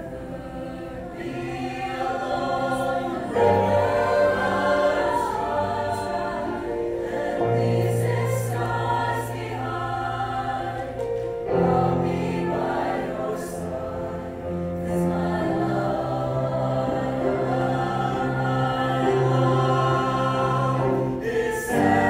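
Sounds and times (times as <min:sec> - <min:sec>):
choir singing chords: 0:00.0 - 0:22.0
piano accompaniment: 0:01.1 - 0:22.0.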